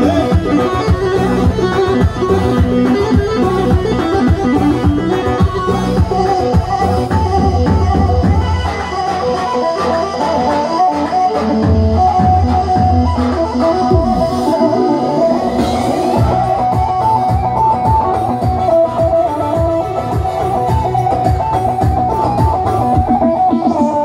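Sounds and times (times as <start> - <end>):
deep bass beat: 0.0 - 8.7, 11.6 - 14.8, 15.6 - 24.0
keyboard and drum beat: 0.0 - 24.0
plucked melody: 0.0 - 24.0.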